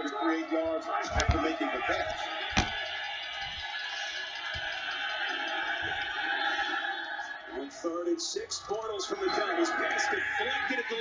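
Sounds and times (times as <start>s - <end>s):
music from tv speaker: 0.0s - 11.0s
stadium crowd noise: 0.0s - 11.0s.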